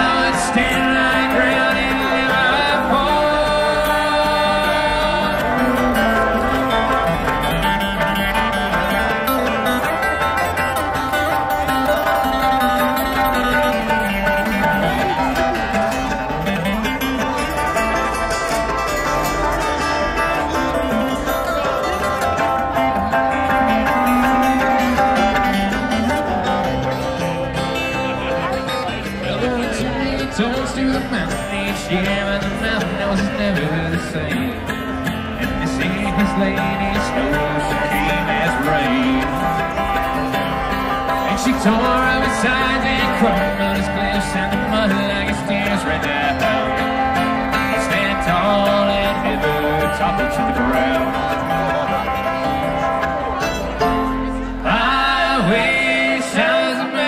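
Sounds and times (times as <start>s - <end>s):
bluegrass band over pa: 0.0s - 57.0s.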